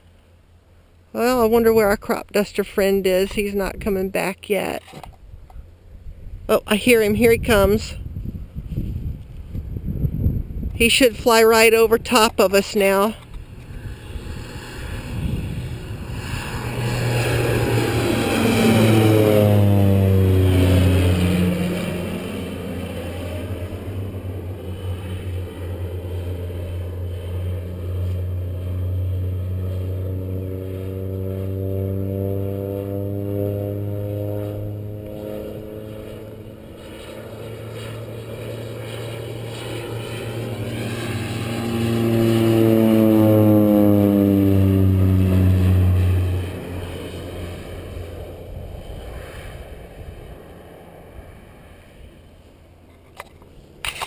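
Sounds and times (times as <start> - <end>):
propeller airplane drone: 0.0 - 54.0.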